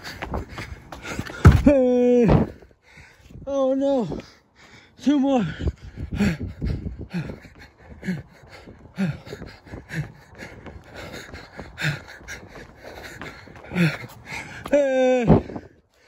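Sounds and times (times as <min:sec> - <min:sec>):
man panting: 0:00.0 - 0:01.7, 0:02.4 - 0:16.0.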